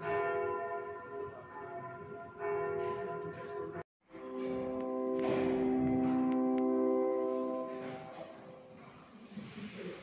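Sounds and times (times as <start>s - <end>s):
church bells ringing: 0.0s - 8.8s.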